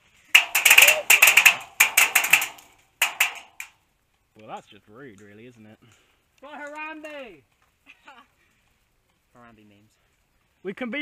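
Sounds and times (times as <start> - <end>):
rapid airsoft gun fire: 0.4 - 3.6.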